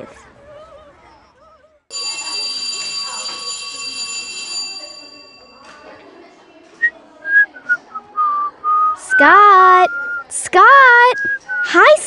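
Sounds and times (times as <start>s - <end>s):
school bell ringing: 1.9s - 6.2s.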